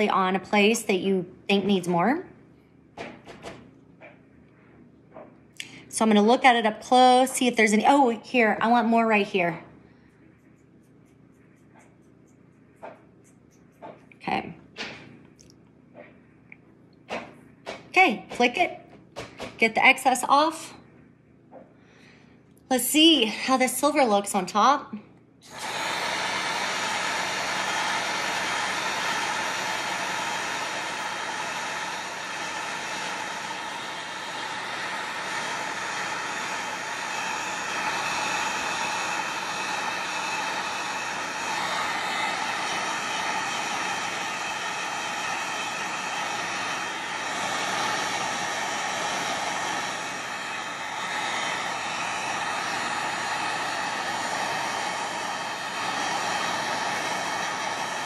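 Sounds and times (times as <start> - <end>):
heat tool fan whirring: 0.0 - 16.3, 17.0 - 58.0.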